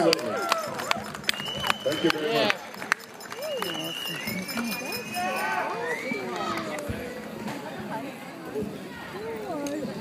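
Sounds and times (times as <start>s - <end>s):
crowd talking: 0.0s - 10.0s
thin high tone: 1.2s - 6.2s.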